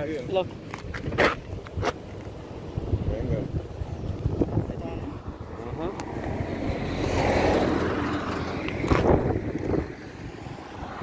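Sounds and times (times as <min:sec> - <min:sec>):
wind rumble on microphone: 0:00.8 - 0:11.0
vehicle passing by: 0:04.3 - 0:11.0.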